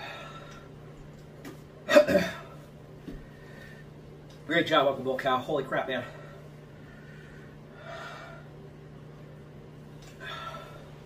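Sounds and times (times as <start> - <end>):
man breathing hard: 6.0 - 8.6, 10.1 - 11.0.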